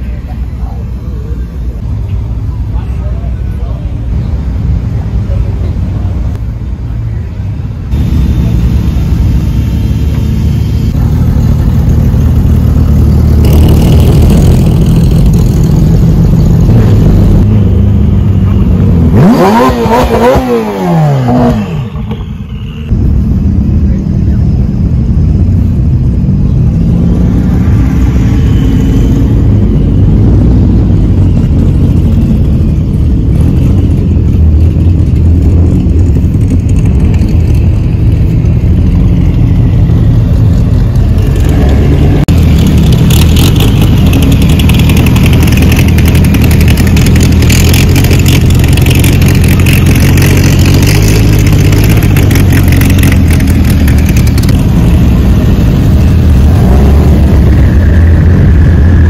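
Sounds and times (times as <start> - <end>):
car engines rumbling: 0.0 - 59.0
engine revving: 7.9 - 22.0, 26.5 - 59.0.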